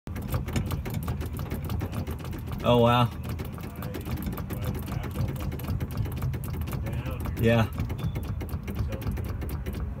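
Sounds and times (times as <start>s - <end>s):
rapid mechanical rattle: 0.1s - 10.0s.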